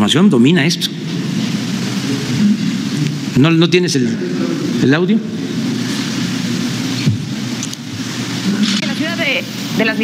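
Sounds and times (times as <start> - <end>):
steady rushing noise: 0.3 - 10.0.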